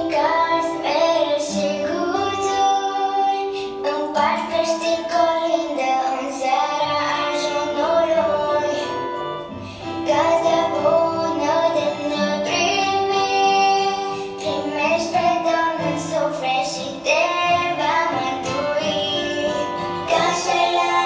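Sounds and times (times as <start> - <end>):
girl singing into a microphone: 0.0 - 21.0
instrumental backing track: 0.0 - 21.0.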